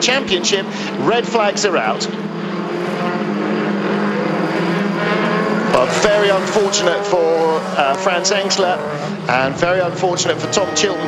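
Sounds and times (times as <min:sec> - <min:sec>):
car engines droning: 0:00.0 - 0:11.0.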